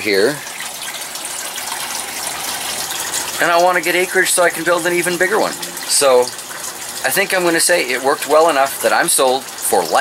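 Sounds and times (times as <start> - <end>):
water running and splashing: 0.0 - 10.0.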